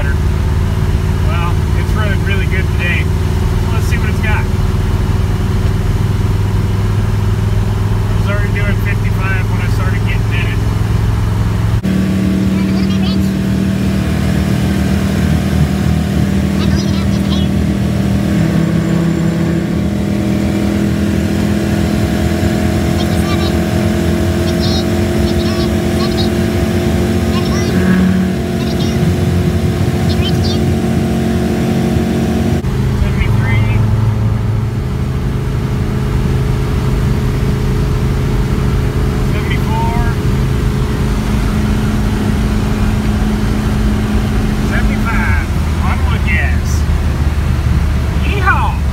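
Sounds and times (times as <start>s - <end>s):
pickup engine running under load: 0.0s - 48.9s
road noise: 0.0s - 48.9s.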